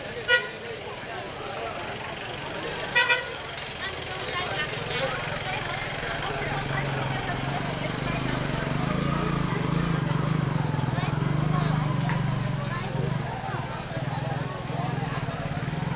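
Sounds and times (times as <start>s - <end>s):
crowd chatter: 0.0s - 15.9s
vehicle horn beeps: 0.3s - 0.6s, 2.9s - 3.4s.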